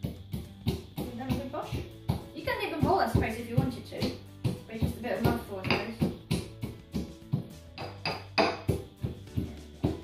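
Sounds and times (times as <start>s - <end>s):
background music: 0.0s - 10.0s
pestle pounding in a mortar: 0.0s - 10.0s.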